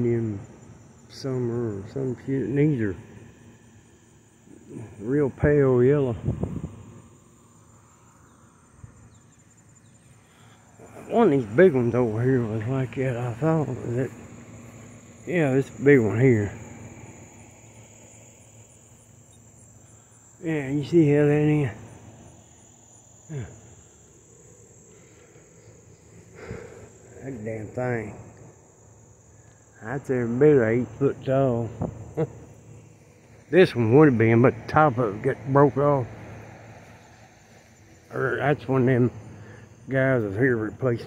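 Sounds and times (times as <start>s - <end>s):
distant traffic rush: 0.0s - 41.0s
insect chirping: 0.0s - 41.0s
insect high-pitched trill: 0.0s - 41.0s.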